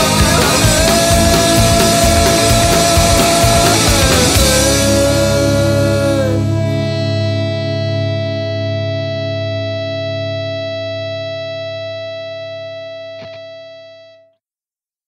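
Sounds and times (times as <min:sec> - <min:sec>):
electric guitar chord ringing: 0:00.0 - 0:14.3.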